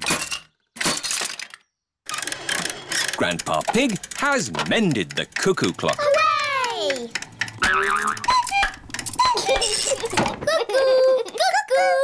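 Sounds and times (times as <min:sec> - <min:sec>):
cuckoo clock calling: 0:02.2 - 0:10.3.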